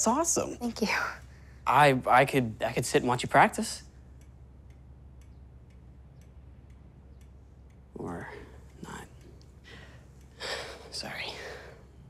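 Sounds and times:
faint steady ticking: 0.0s - 12.0s
low room hum: 0.0s - 12.0s.

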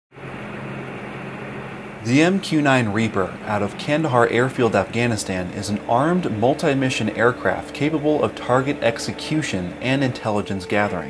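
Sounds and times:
low two-tone mechanical drone: 0.1s - 11.0s
even hiss: 0.2s - 11.0s.

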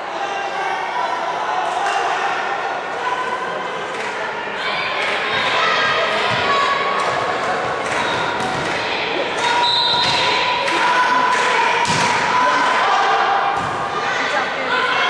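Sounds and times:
people shouting: 8.0s - 15.0s
volleyball hitting floor: 9.4s - 12.3s.

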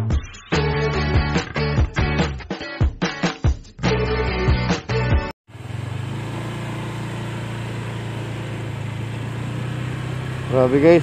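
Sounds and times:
intro music: 0.0s - 5.3s
car engine humming: 5.5s - 11.0s.

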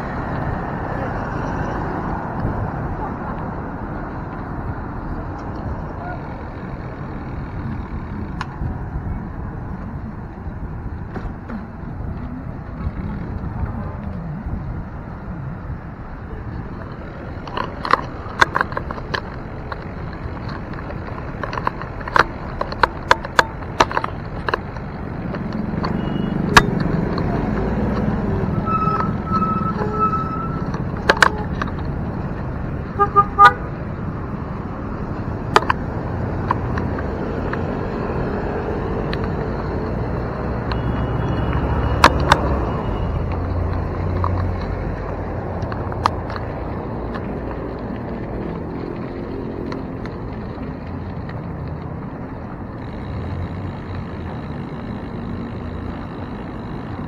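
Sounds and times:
bike clicking and rattling: 0.0s - 57.0s
road traffic noise: 0.0s - 57.0s
horn tooting: 28.5s - 31.6s, 32.9s - 33.7s.

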